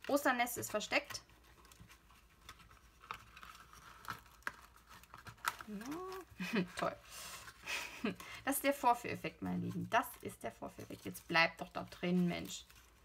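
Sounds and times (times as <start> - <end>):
shredded paper crinkling: 0.1 - 7.7, 10.5 - 13.0.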